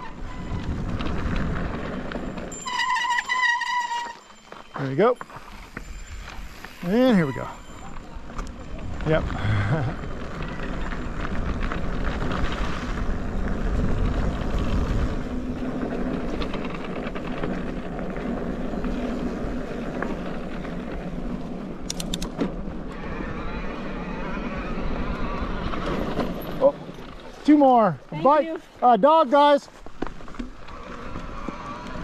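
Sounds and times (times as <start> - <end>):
tyres rolling over dirt: 0.0 - 28.4, 29.1 - 32.0
wind buffeting microphone: 5.5 - 17.9
sharp clicks: 21.8 - 22.4.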